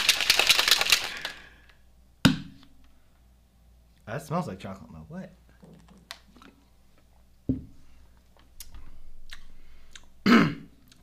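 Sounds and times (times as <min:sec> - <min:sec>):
shaker bottle rattling slosh: 0:00.0 - 0:01.4.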